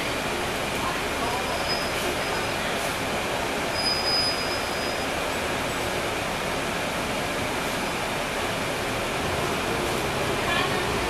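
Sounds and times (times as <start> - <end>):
bus diesel engine running: 0.0 - 11.0
brief high-pitched squeal: 1.5 - 2.6, 3.7 - 5.2.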